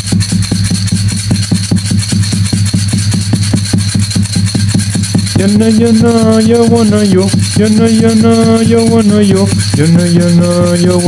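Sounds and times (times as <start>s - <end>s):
fast percussion beat: 0.0s - 11.0s.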